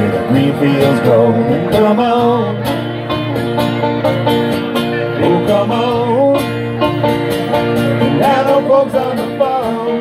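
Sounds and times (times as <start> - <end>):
acoustic guitar: 0.0 - 10.0
banjo: 0.0 - 10.0.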